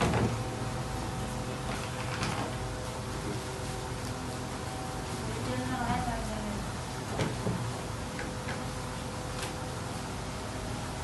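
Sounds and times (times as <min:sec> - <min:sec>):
kitchen background hum: 0:00.0 - 0:11.0.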